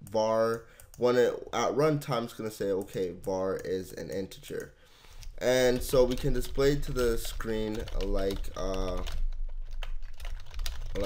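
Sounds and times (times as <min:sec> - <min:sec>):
keyboard typing: 0:02.6 - 0:11.0
low hum: 0:05.1 - 0:11.0.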